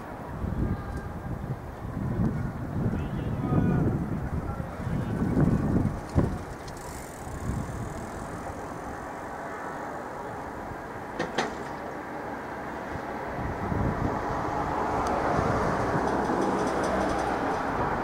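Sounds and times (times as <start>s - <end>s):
train rolling on rails: 3.9s - 18.0s.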